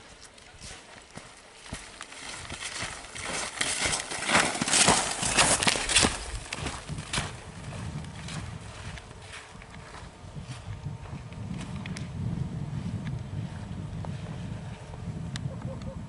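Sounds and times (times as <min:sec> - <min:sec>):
skis scraping on snow: 0:00.0 - 0:10.7.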